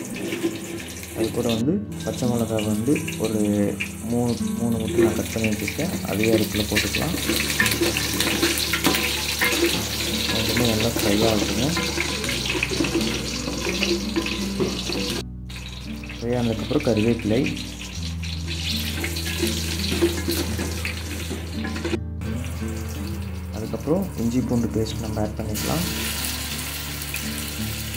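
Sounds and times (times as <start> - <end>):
food sizzling in hot oil: 0.0 - 27.9.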